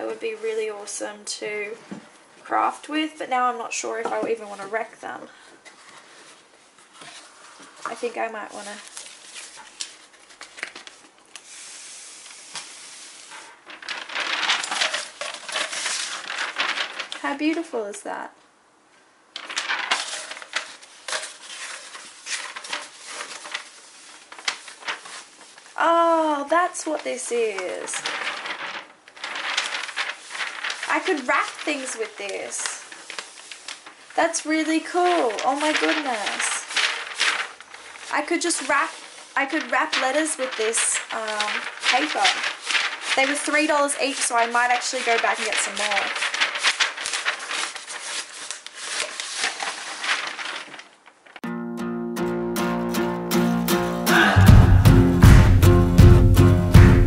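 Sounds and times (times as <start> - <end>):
stiff paper rustling and crackling: 3.8 - 17.8, 19.3 - 51.4.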